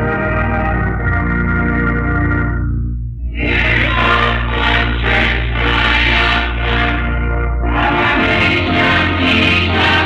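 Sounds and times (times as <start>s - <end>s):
church choir singing: 3.3s - 10.0s.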